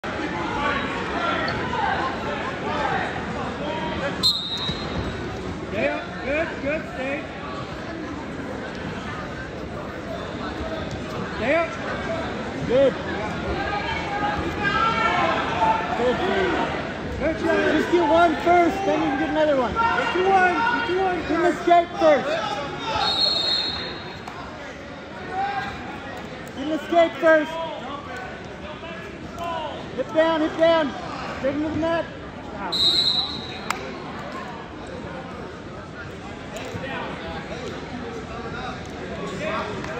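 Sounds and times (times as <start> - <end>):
faint crowd voices: 0.0 - 39.9
referee's whistle blast: 4.2 - 5.0, 23.0 - 24.0, 32.7 - 33.7.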